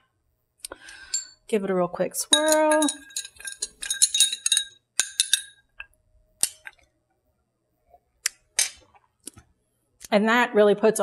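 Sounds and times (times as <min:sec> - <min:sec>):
bar spoon clinking in glass: 0:02.3 - 0:05.6
glass clicks: 0:02.3 - 0:06.8.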